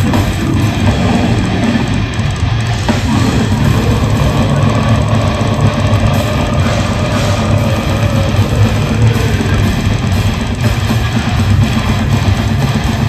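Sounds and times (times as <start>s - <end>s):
death metal band playing live: 0.0s - 13.0s.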